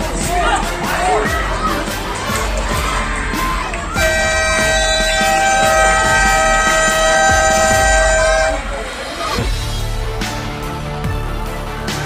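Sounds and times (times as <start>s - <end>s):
scoreboard buzzer long tone: 4.0s - 8.7s.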